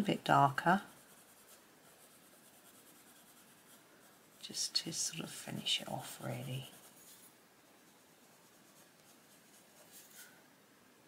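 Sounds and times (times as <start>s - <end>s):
pencil scratching on paper: 0.0s - 10.4s.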